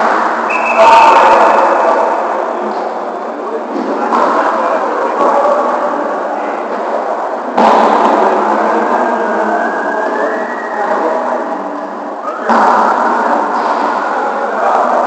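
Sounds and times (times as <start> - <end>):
many players' voices echoing: 0.0 - 15.0
volleyballs hit and bounced: 12.4 - 15.0.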